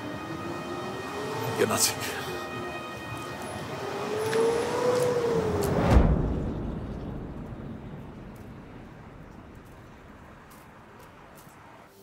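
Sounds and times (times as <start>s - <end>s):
whoosh: 4.6s - 10.8s.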